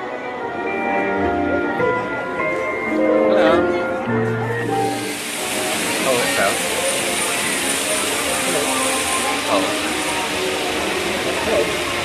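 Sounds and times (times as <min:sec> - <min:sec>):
music: 0:00.0 - 0:12.0
water jets spraying: 0:04.6 - 0:12.0.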